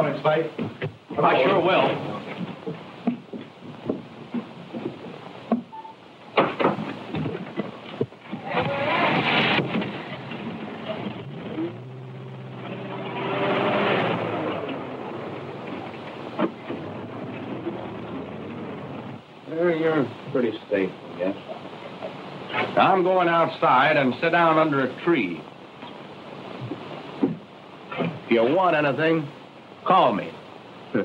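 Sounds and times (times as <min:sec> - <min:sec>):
film soundtrack hiss and crackle: 0:00.0 - 0:31.0
car engine running: 0:10.0 - 0:19.2.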